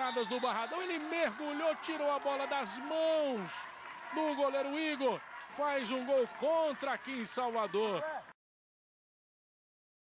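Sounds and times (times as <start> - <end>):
football commentator's voice: 0.0 - 8.4.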